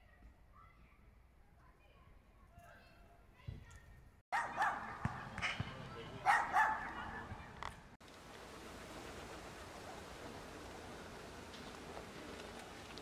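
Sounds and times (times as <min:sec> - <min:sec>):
steady outdoor hiss: 0:03.4 - 0:13.0
dog barking: 0:04.3 - 0:05.2, 0:06.2 - 0:07.2.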